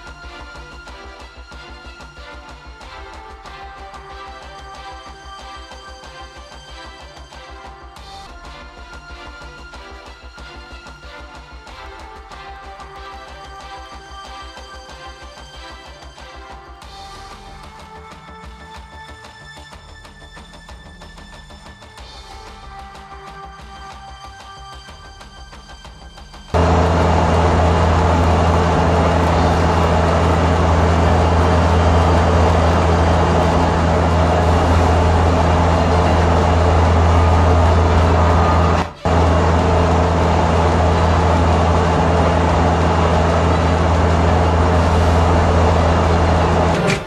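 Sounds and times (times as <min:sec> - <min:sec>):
loud mechanical drone: 0:26.6 - 0:47.0.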